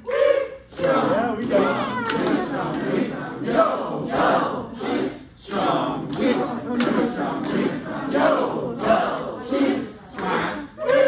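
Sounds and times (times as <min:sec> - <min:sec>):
crowd chanting syllables: 0:00.0 - 0:11.0.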